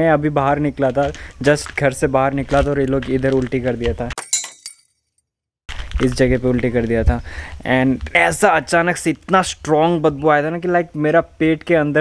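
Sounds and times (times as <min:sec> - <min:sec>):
person speaking: 0:00.0 - 0:04.2.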